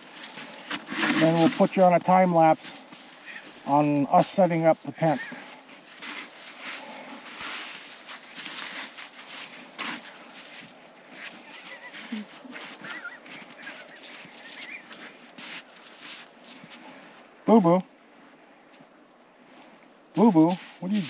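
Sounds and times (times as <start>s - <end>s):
snow shovels scraping snow: 0.0s - 4.0s, 4.9s - 16.8s, 20.2s - 21.0s.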